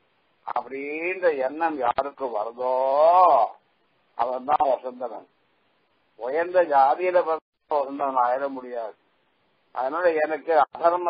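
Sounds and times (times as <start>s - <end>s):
man speaking: 0.4s - 3.6s, 4.2s - 5.3s, 6.2s - 9.0s, 9.7s - 11.0s.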